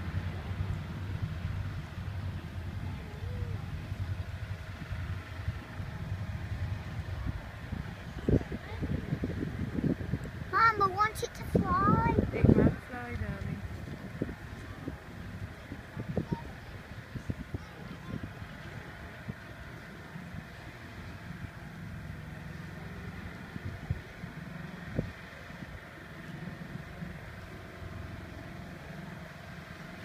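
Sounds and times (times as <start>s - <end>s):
distant aircraft engines droning: 0.0s - 30.0s.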